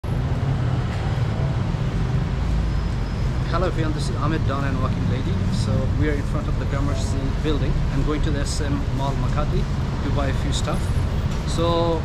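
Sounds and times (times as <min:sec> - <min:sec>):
low rumble of street traffic: 0:00.0 - 0:12.0.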